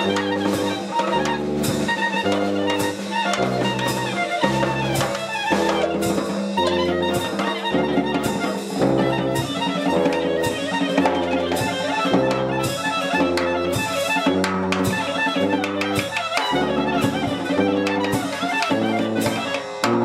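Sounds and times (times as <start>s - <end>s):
clarinet solo: 0.0s - 20.0s
drums keeping time: 0.0s - 20.0s
tuba bass line: 0.0s - 20.0s.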